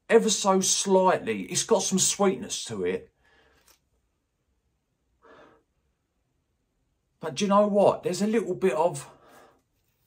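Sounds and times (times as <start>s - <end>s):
soft breath: 3.2s - 3.8s, 5.2s - 6.0s, 9.1s - 10.0s.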